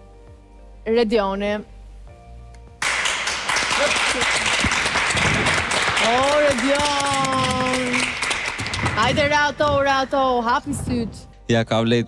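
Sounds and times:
background music: 0.0s - 12.0s
audience applause: 2.8s - 9.6s.

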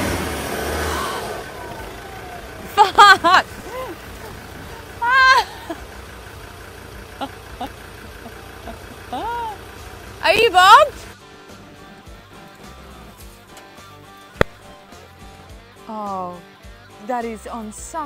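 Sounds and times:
vehicle engine running slowly: 0.0s - 15.5s
people exclaiming in alarm: 0.8s - 5.6s
guitar music: 1.4s - 18.0s.

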